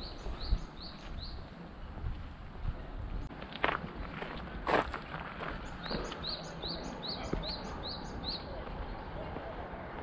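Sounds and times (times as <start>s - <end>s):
bird chirping: 0.0s - 2.0s, 5.5s - 9.6s
footsteps outdoors: 0.0s - 10.0s.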